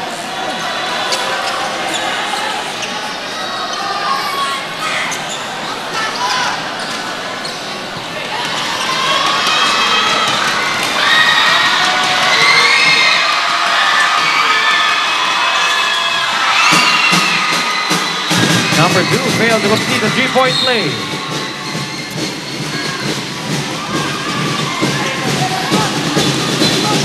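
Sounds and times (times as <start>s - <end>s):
crowd cheering and shouting: 0.0s - 27.0s.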